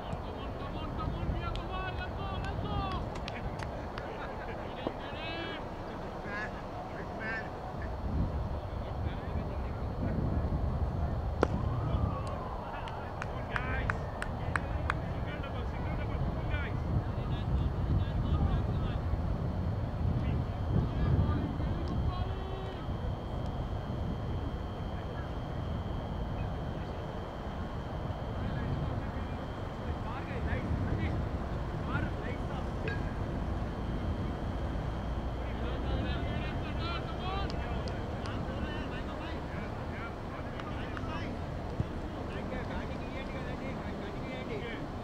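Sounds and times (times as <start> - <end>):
wind rumble on microphone: 0.0 - 4.2, 7.1 - 44.2
faint distant voices: 0.0 - 45.0.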